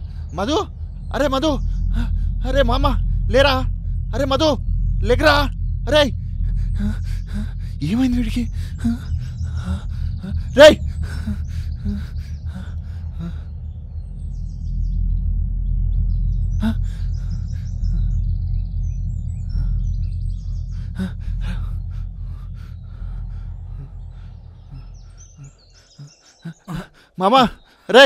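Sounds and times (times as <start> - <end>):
low steady rumble: 0.0 - 26.5
faint bird chirps: 0.0 - 28.0.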